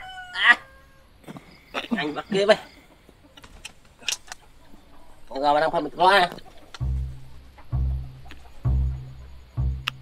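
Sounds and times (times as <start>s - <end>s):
rooster crowing: 0.0s - 1.1s.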